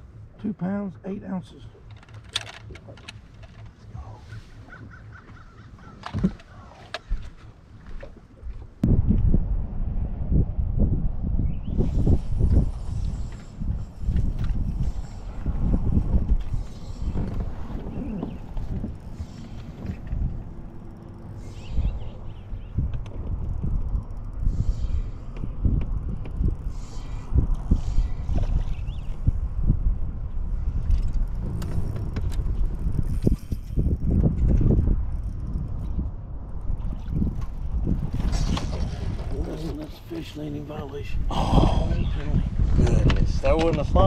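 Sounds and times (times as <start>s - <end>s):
wind rumble on microphone: 1.5s - 44.0s
fishing reel cranking and clicking: 30.8s - 35.9s.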